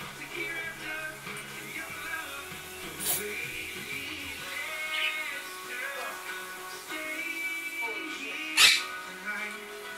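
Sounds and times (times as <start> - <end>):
music from television: 0.0 - 9.9.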